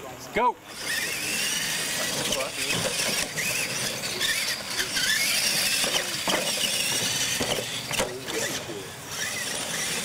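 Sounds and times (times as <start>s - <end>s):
electric toy truck motors whining: 0.6s - 10.0s.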